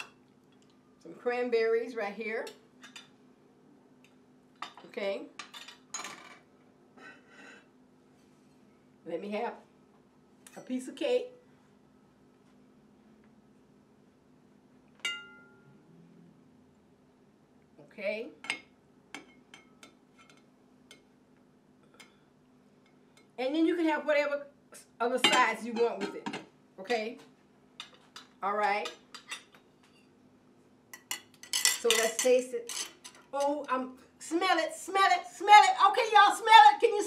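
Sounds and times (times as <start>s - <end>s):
faint steady hum: 0.0s - 37.0s
serving utensil clinking dishes: 31.0s - 33.5s.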